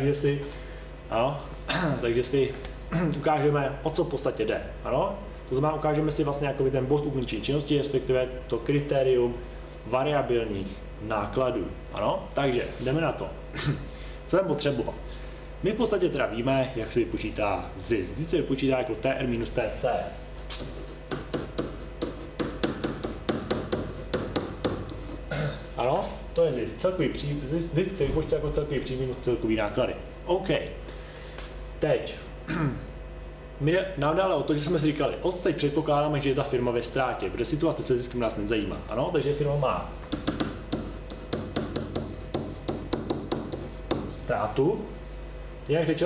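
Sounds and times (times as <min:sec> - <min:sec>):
pen tapping and scraping on whiteboard: 0:20.5 - 0:25.2, 0:40.1 - 0:44.2.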